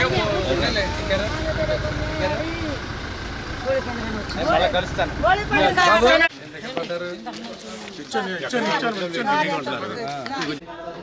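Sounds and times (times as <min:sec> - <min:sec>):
car engine idling: 0:00.0 - 0:06.3
men talking: 0:00.0 - 0:10.7.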